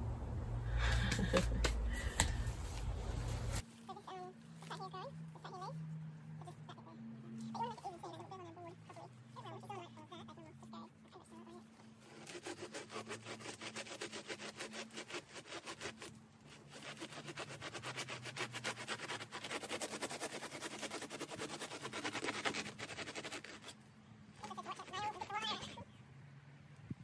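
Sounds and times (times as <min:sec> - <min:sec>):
serrated blade sawing fibrous material: 0:00.8 - 0:26.0.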